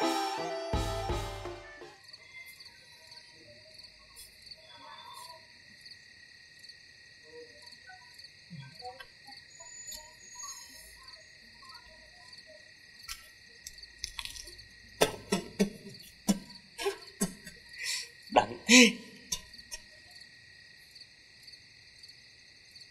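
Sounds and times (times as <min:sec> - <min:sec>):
crickets chirping: 0:01.8 - 0:22.9.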